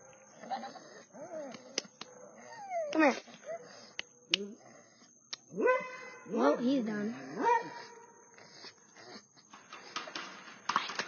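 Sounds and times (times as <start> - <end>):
dog whining: 0.4 - 5.0.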